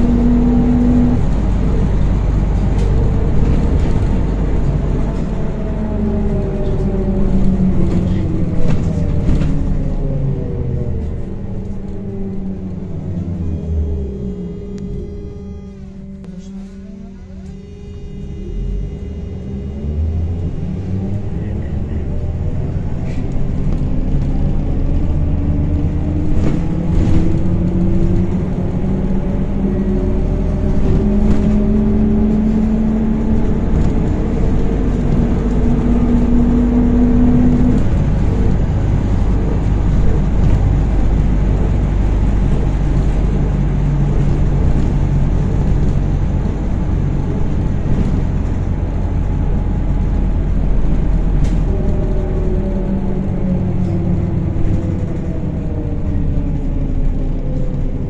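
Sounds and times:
road and body rumble: 0.0 - 58.0.

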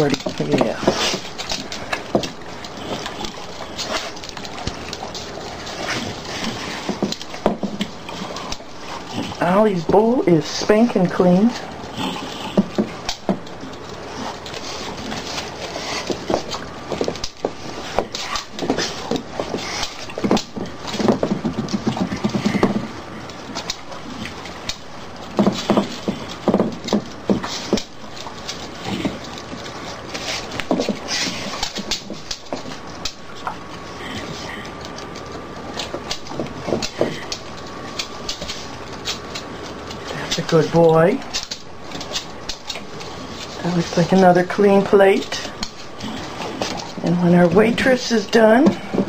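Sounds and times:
dogs licking bowls: 0.0 - 49.0.

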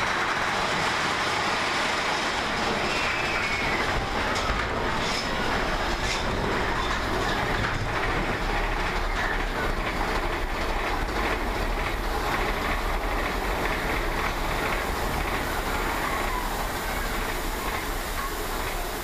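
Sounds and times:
roller coaster cars rattling: 0.0 - 19.0.

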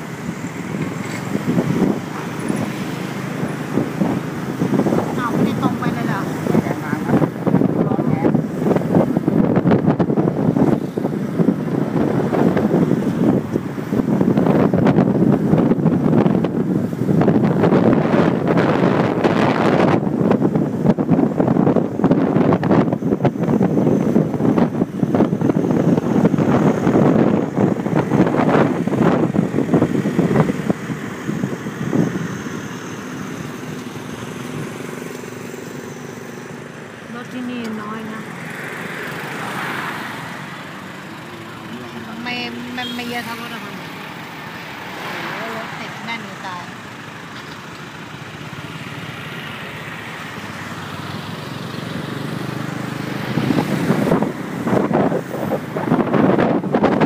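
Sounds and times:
traffic: 0.0 - 57.0
wind buffeting microphone: 0.0 - 57.0.

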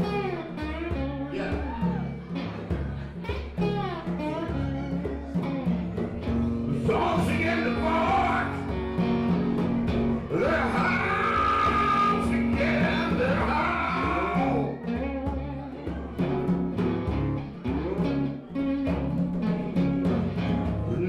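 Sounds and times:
acoustic guitar strumming: 0.0 - 21.0
man singing into microphone: 6.7 - 8.7, 10.3 - 14.9.

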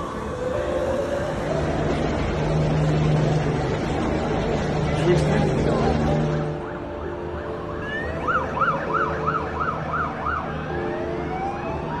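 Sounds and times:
emergency siren: 0.0 - 12.0.

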